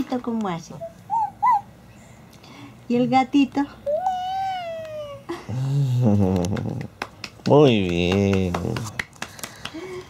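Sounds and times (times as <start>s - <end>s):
toddler meowing: 3.9s - 5.3s.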